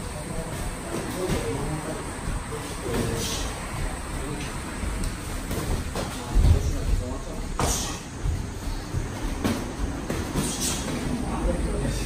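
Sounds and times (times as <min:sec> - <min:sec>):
footsteps on ring floor: 0:04.1 - 0:10.7.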